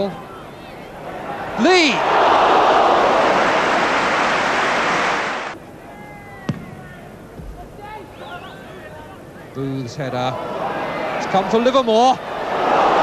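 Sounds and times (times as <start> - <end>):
stadium crowd roaring: 0.0 - 8.8, 10.2 - 13.0
crowd background: 0.0 - 13.0
faint whistles: 8.1 - 8.9.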